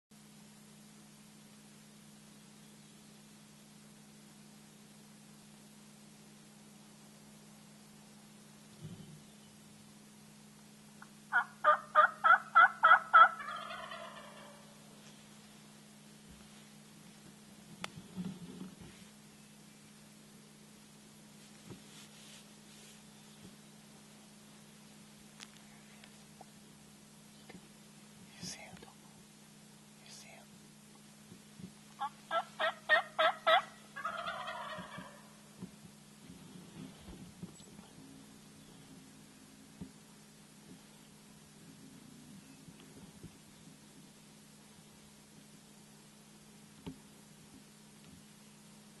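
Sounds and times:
turkey yelping: 11.3s - 14.8s, 32.0s - 35.4s.

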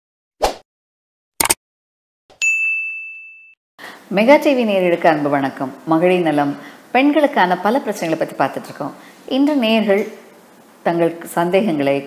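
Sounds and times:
notification bell ding: 2.4s - 3.6s.

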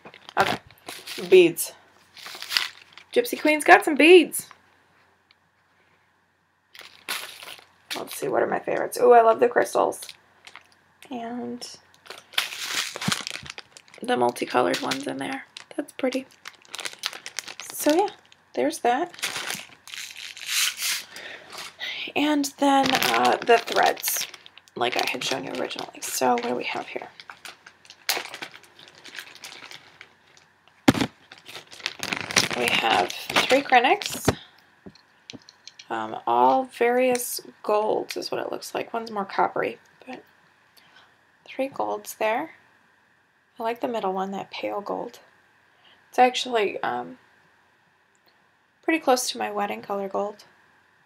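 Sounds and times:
plastic packets crinkling: 0.0s - 1.4s, 2.1s - 3.4s, 6.8s - 8.3s, 10.0s - 10.8s, 11.9s - 21.8s, 22.4s - 35.9s
plastic bag rustling: 0.0s - 3.4s, 6.8s - 8.3s, 12.0s - 35.9s.

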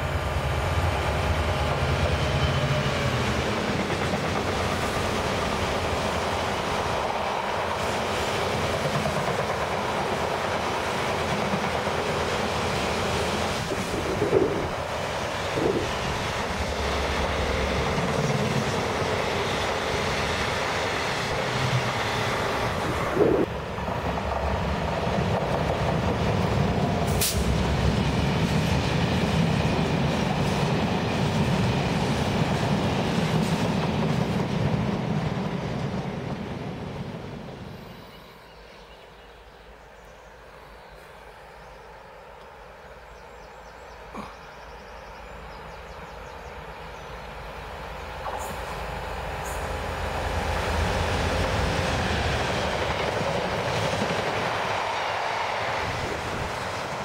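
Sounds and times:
diesel locomotive engine rumble: 0.0s - 57.0s
freight train passing: 0.0s - 57.0s.

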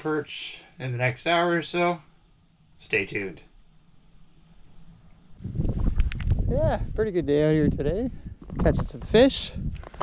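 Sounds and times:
crackles: 0.0s - 7.1s, 8.4s - 10.0s
faint low hum: 0.0s - 10.0s
wind buffeting microphone: 5.4s - 10.0s.

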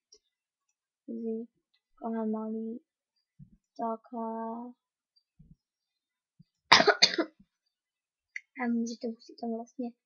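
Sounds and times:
person coughing: 6.7s - 7.4s.

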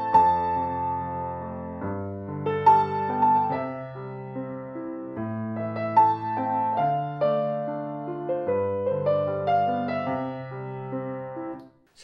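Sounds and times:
acoustic piano playing slow piece: 0.0s - 11.6s.

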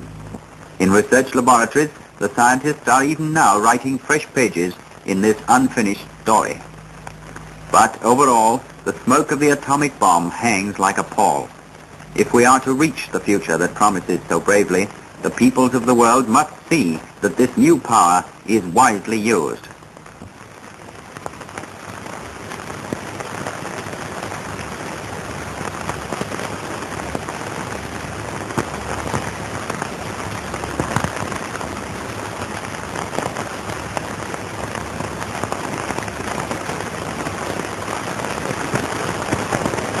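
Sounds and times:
film soundtrack crackle: 0.0s - 40.0s
steady hiss: 0.0s - 40.0s.

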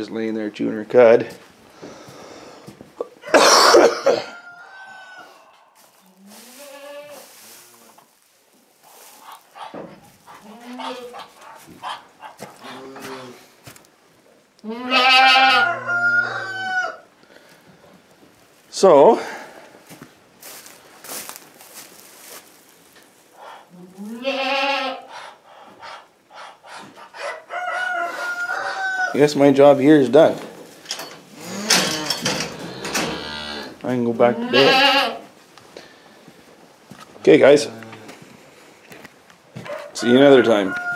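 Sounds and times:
footsteps: 1.2s - 3.2s, 5.2s - 13.9s, 17.4s - 24.1s, 29.6s - 33.9s, 35.2s - 40.0s
rooster crowing: 3.2s - 5.8s, 15.2s - 17.1s, 27.3s - 29.2s, 39.6s - 40.9s
rustling in straw: 4.5s - 13.9s, 17.4s - 25.1s.

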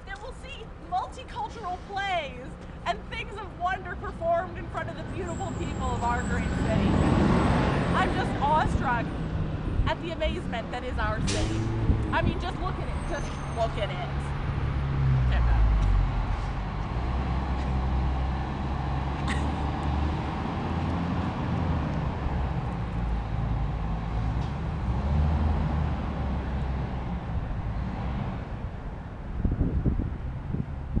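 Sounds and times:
traffic rumble in underpass: 0.0s - 31.0s.

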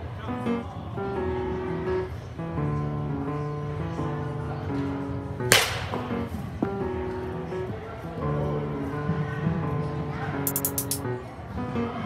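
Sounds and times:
background music: 3.2s - 9.8s
bat cracking ball: 5.5s - 6.4s.

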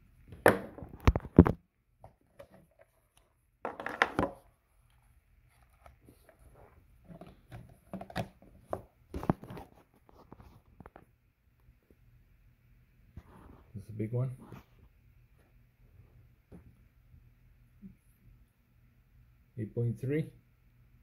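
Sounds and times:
plastic clatter: 0.4s - 4.5s, 7.1s - 11.0s.

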